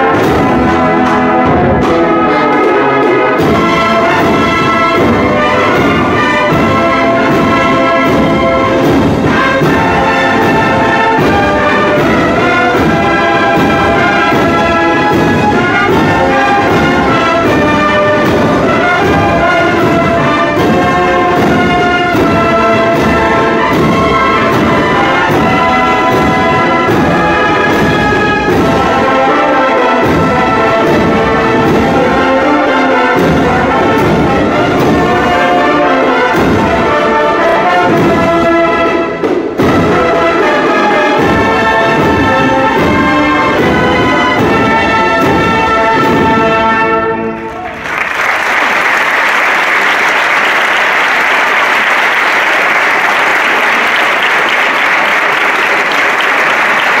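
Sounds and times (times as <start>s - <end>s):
brass band playing a march: 0.0s - 57.0s
audience applause: 47.4s - 57.0s.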